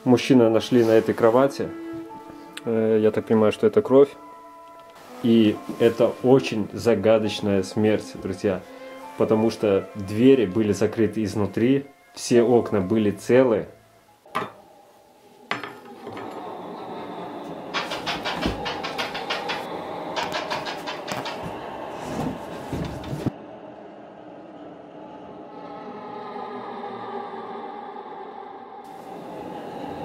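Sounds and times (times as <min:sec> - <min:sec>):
eerie ambient drone: 0:00.0 - 0:30.0
fast even clatter: 0:17.7 - 0:21.6.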